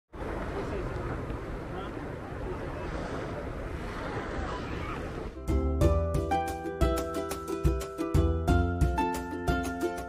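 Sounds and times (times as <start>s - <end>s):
ocean surf breaking: 0.2s - 5.4s.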